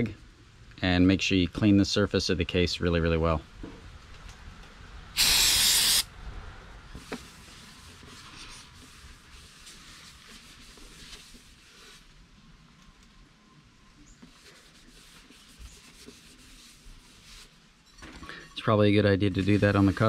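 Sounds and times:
paper towel rubbing metal: 14.3 - 17.6, 19.2 - 20.0.

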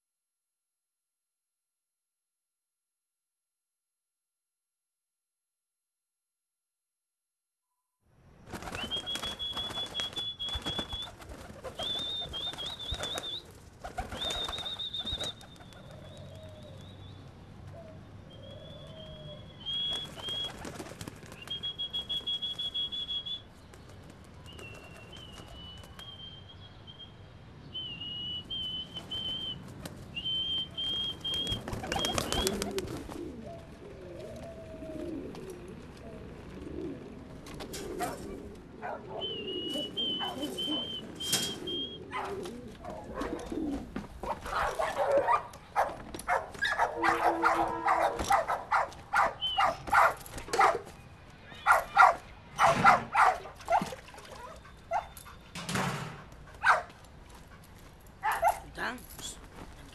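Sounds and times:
pigeons cooing: 31.3 - 45.5, 46.6 - 50.8
dog barking and yipping: 44.2 - 50.9, 51.6 - 55.4, 56.6 - 56.9, 58.2 - 58.7.

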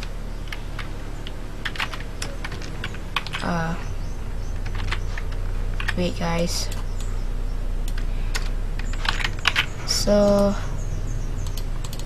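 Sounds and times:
keyboard keys clicking: 0.0 - 3.6, 4.6 - 6.0, 7.8 - 10.5, 11.4 - 12.0
low electrical hum: 0.0 - 12.0.

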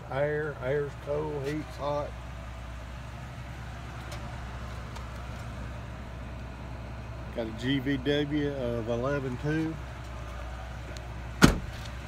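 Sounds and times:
truck engine idling: 0.0 - 12.0.

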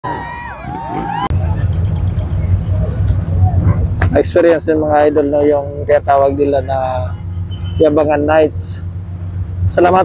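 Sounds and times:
motorcycle engine revving: 0.1 - 2.0.

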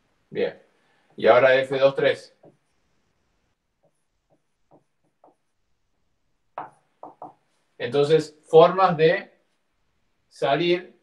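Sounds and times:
marker on whiteboard: 1.0 - 7.8.

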